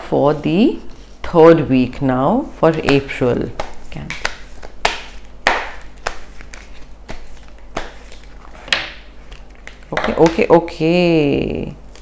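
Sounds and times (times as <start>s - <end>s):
cards tapping together: 2.7s - 10.5s
cards swishing as they slide: 3.6s - 9.8s.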